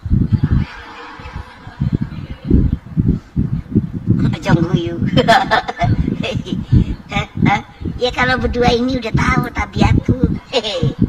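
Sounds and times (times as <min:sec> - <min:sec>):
person laughing: 0:05.1 - 0:06.7.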